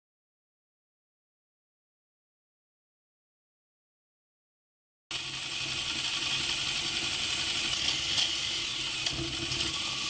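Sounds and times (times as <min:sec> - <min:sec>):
mechanical ticking clatter: 0:05.1 - 0:10.0
motorcycle engine idling: 0:05.1 - 0:10.0.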